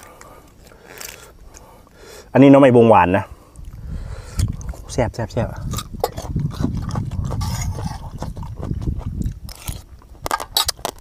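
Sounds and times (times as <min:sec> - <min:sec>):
man chewing food: 0:00.0 - 0:02.2, 0:03.4 - 0:04.9, 0:05.6 - 0:11.0.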